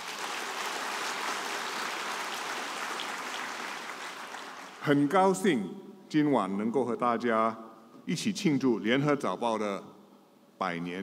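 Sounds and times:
audience applauding: 0.0s - 4.9s.

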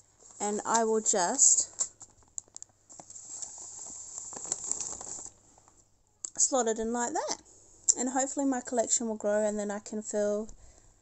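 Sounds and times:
paper envelopes rustling: 1.4s - 5.8s.

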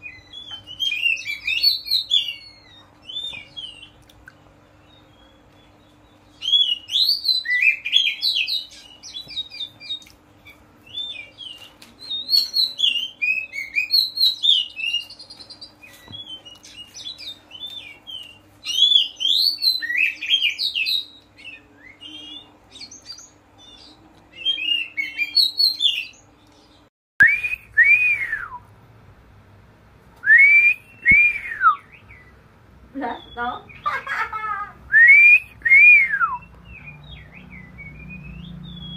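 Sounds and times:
magpie-robin whistled song: 0.0s - 4.0s, 4.8s - 28.6s, 30.2s - 32.4s, 33.1s - 33.9s, 34.9s - 38.9s
bird whistles rising and falling: 34.9s - 38.9s.

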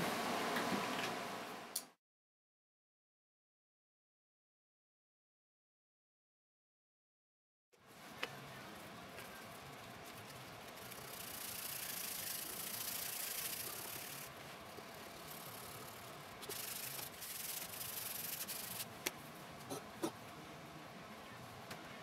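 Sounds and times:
sandpaper rubbing on wood: 10.2s - 14.3s, 15.2s - 18.9s.

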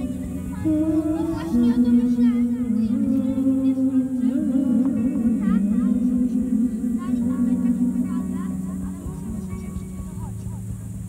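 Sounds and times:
wavering low drone: 0.0s - 11.0s.

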